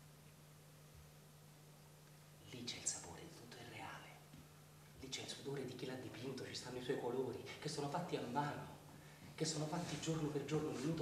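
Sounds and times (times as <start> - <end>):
low steady hum: 0.0 - 11.0
man whispering: 2.4 - 4.4, 5.0 - 7.9.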